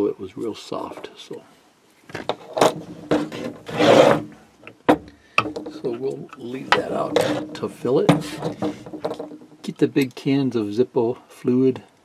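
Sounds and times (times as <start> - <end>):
rubbing scrape on table: 2.3 - 4.4, 6.6 - 9.1.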